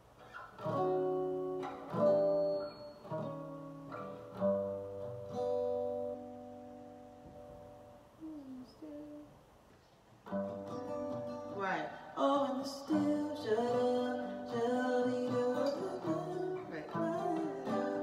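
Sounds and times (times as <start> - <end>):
acoustic guitar chords strummed: 0.0 - 9.3, 10.2 - 18.0.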